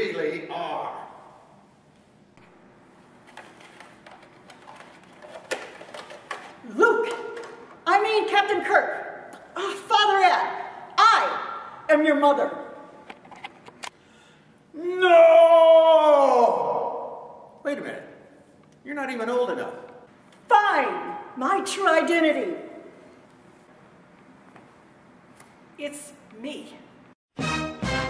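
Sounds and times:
plastic mask rustling and clicking: 0:03.1 - 0:07.8
man yelling: 0:06.7 - 0:08.8, 0:09.6 - 0:12.5, 0:14.8 - 0:17.4.

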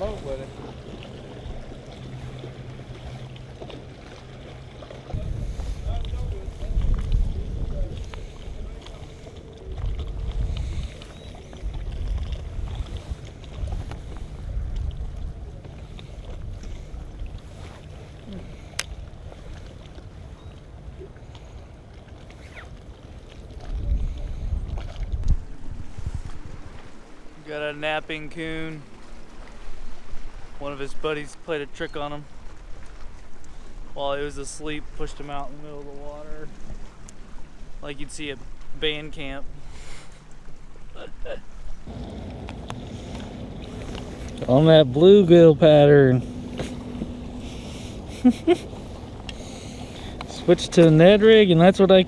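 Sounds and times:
wind buffeting microphone: 0:04.9 - 0:19.6, 0:23.4 - 0:27.2, 0:41.8 - 0:52.0
faint steady hum: 0:41.9 - 0:51.8.

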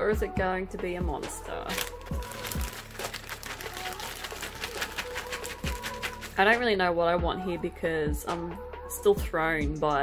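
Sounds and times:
background music: 0:00.0 - 0:10.0
plastic bag crinkling: 0:01.7 - 0:06.5.

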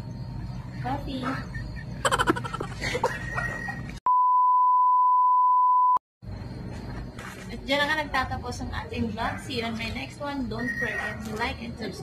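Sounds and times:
steady test tone beep: 0:04.1 - 0:06.0.

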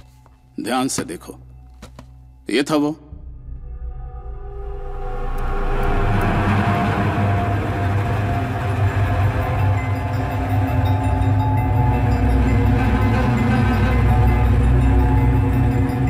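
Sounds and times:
dramatic film score rumble: 0:03.1 - 0:16.0.

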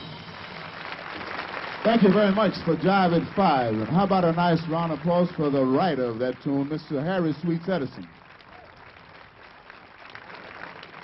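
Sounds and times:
audience applauding: 0:00.0 - 0:11.0
man speaking: 0:01.9 - 0:08.1.

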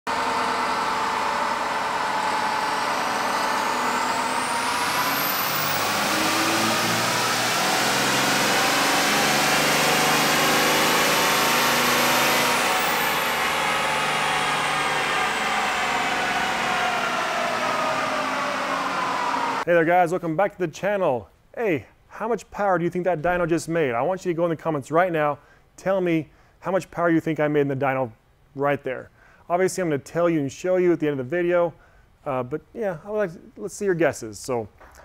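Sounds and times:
turbo whine: 0:00.1 - 0:19.6
diesel engine under load: 0:00.1 - 0:19.7.

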